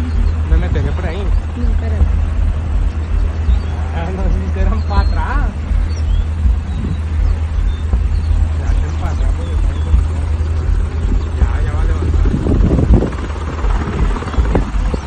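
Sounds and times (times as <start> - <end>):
indistinct voices: 0.0 - 15.0
loud low rumble: 0.0 - 15.0.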